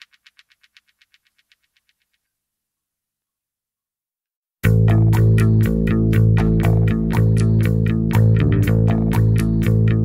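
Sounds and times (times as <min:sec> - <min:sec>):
electronic percussion ticking: 0:00.0 - 0:02.1.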